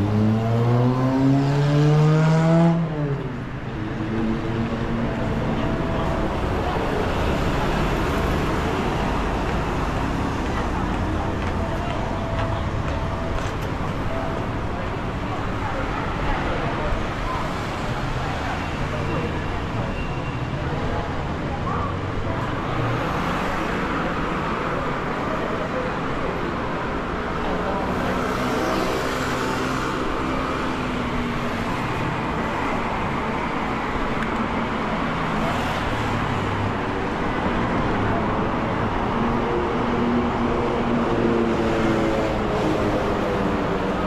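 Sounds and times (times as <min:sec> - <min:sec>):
city street traffic: 0:00.0 - 0:44.0
pedestrians' voices: 0:00.0 - 0:44.0
vehicles passing: 0:00.0 - 0:44.0.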